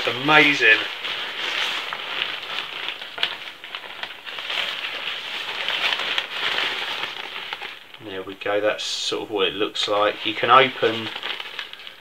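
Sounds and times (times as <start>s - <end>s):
tent fabric rustling and crinkling: 0.0s - 12.0s.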